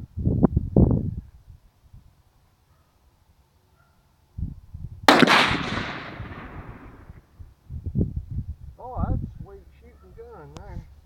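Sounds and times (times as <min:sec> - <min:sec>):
rifle shot echo: 0:05.1 - 0:07.2.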